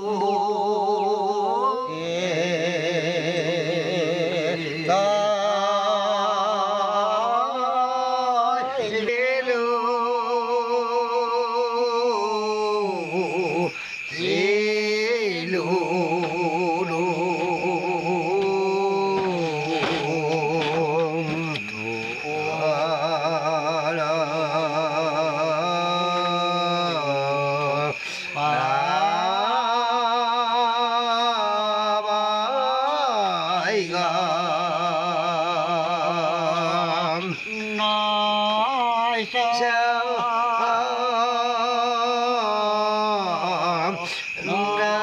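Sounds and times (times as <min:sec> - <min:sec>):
lower voice with vibrato: 0:00.0 - 0:02.4, 0:13.4 - 0:22.8
high insect drone: 0:00.0 - 0:45.0
man chanting wordlessly: 0:00.0 - 0:45.0.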